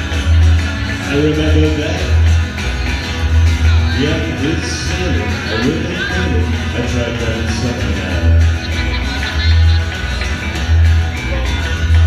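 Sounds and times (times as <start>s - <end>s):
strummed acoustic guitar: 0.0s - 12.0s
upright bass plucking: 0.0s - 12.0s.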